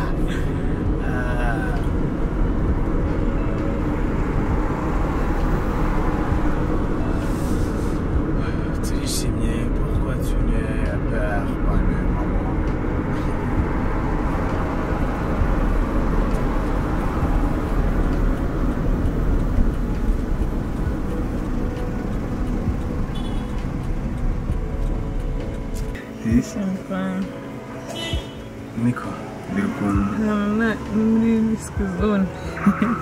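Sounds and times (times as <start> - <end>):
car interior road noise: 0.0 - 33.0.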